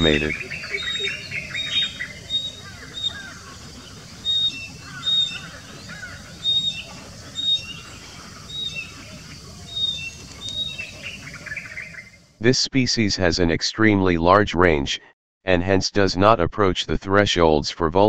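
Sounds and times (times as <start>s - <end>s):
birds chirping: 0.0s - 12.4s.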